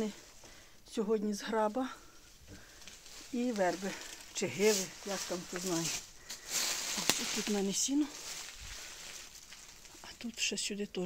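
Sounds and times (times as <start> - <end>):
rustling of hay underfoot: 2.4 - 10.6.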